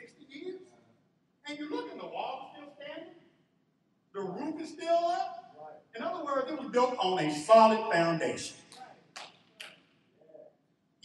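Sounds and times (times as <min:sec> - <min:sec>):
faint low murmur: 0:00.0 - 0:03.5, 0:04.2 - 0:06.9.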